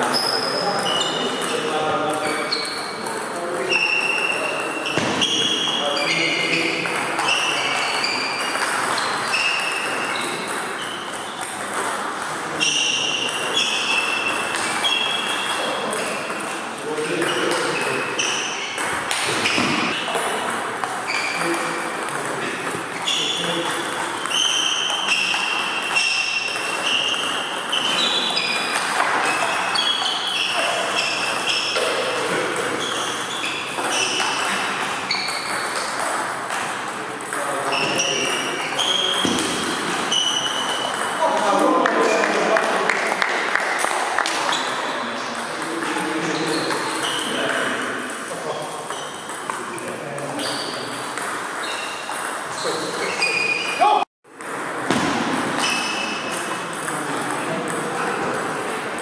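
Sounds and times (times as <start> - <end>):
table tennis balls ticking: 0.2 - 42.1.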